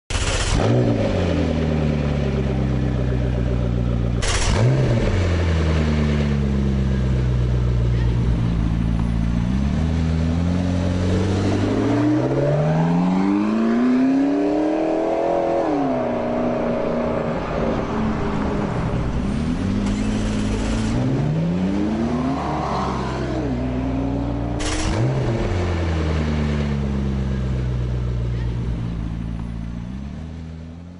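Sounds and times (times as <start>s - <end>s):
car engine revving: 0.1s - 30.9s
exhaust cracks: 4.0s - 5.9s, 24.4s - 26.7s.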